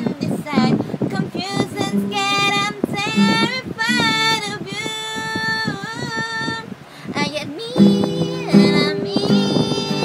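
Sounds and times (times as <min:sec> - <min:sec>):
fingerpicked classical guitar: 0:00.0 - 0:10.0
woman singing long notes: 0:00.0 - 0:10.0.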